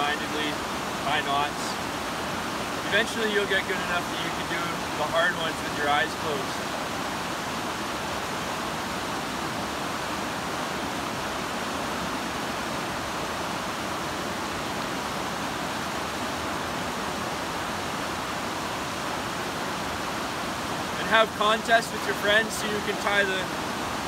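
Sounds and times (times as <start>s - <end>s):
river rushing over rocks: 0.0s - 24.0s.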